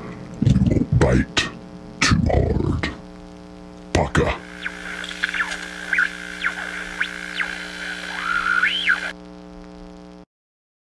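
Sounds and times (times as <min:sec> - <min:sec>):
steady low hum: 0:00.0 - 0:10.2
high swooping warbling tone: 0:04.6 - 0:09.1.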